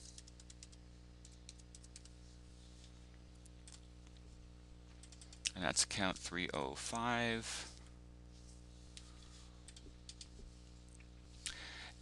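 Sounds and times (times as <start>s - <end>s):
keyboard typing: 0.0s - 2.2s, 3.6s - 3.8s, 5.0s - 5.4s, 9.6s - 10.4s
low steady hum: 0.0s - 12.0s.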